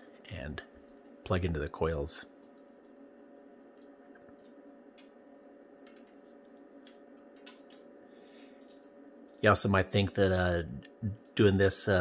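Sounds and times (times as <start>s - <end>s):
steady low hum: 0.0s - 12.0s
faint light clicks of parts: 5.8s - 9.5s.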